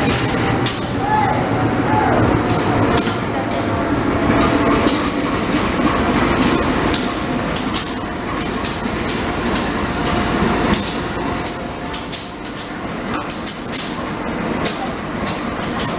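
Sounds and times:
metallic clicks and clacks: 0.0 - 1.0, 2.5 - 3.7, 4.3 - 15.9
diesel locomotive engine drone: 0.0 - 15.9.

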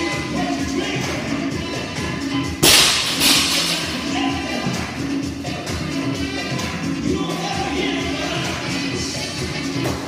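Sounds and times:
background music: 0.0 - 10.0
barbell dropping on floor: 2.6 - 4.0.

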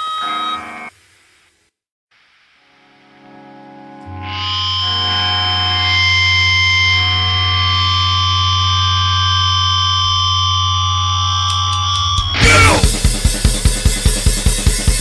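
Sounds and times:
distorted electric guitar feedback: 2.6 - 15.0.

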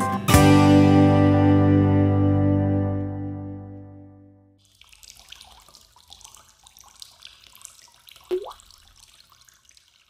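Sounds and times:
water trickling and dripping: 4.6 - 10.0
water drop plopping: 8.3 - 8.8.

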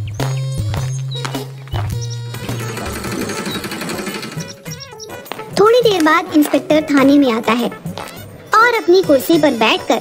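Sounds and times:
background music: 0.0 - 10.0
auto-rickshaw engine rattling: 2.2 - 4.9.

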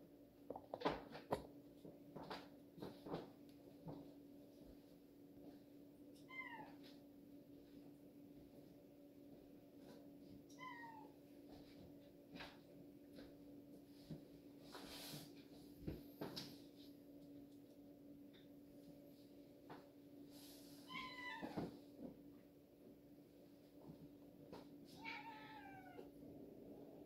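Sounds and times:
cat meowing faintly: 6.2 - 7.0, 10.5 - 11.2, 20.8 - 21.8, 24.9 - 26.2
steady low hum: 21.7 - 27.0.

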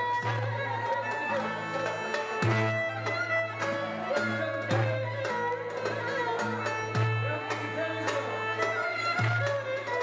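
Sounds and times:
plucked oud notes: 0.0 - 10.0
wavering fiddle melody: 0.0 - 10.0.

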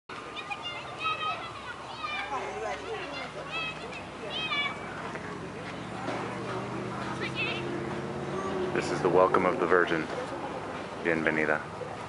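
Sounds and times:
background voices outdoors: 0.1 - 12.0.

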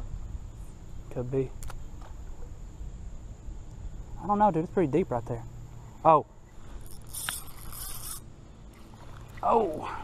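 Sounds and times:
fishing reel buzzing: 6.5 - 9.4.

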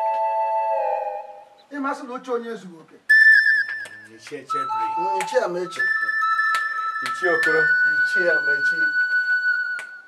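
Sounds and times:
high whistle-like score tone: 3.1 - 10.0.

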